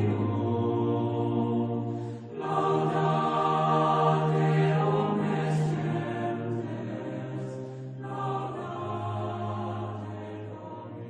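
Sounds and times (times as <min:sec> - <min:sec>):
voices singing slow chant: 0:00.0 - 0:11.0.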